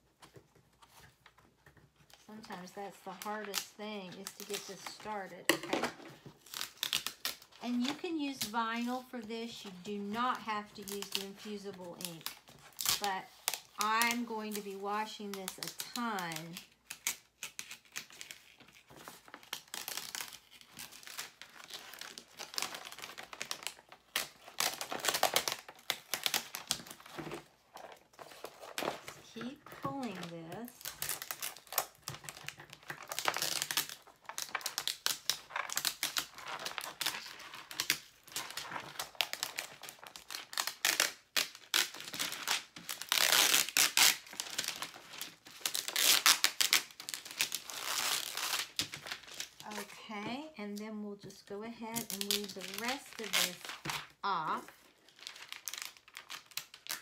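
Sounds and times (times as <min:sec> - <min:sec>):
paper sheet crinkling and tearing: 0:02.0 - 0:05.4, 0:06.0 - 0:50.2, 0:51.8 - 0:57.0.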